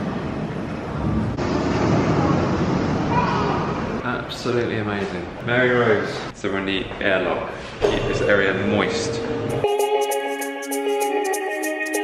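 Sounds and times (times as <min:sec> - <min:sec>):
low rushing room noise: 0:00.0 - 0:05.0.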